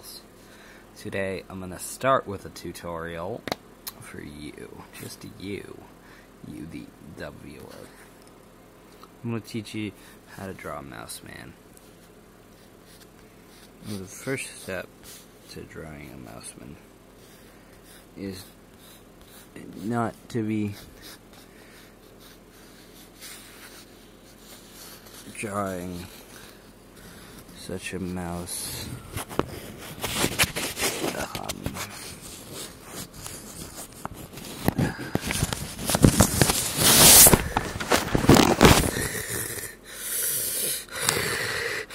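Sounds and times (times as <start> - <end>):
pencil scratching on paper: 12.5 - 15.6, 17.2 - 28.5, 29.2 - 34.6
raspy wheezing breaths: 38.9 - 41.9.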